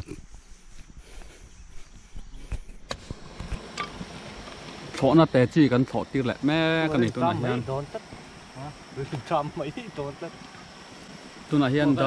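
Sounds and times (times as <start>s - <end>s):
high insect chirring: 0.0s - 12.0s.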